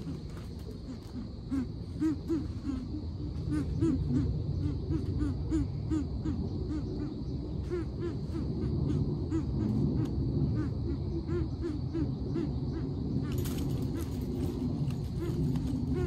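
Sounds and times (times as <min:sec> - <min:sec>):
bird hooting deeply: 0:00.0 - 0:16.0
steady high hum: 0:00.0 - 0:16.0.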